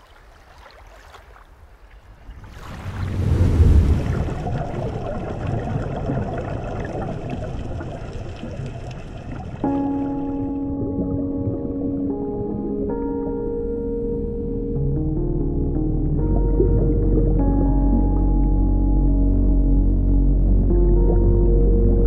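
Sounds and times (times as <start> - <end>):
water sloshing and splashing: 0.0 - 11.8
ambient music with held chords: 9.6 - 22.0.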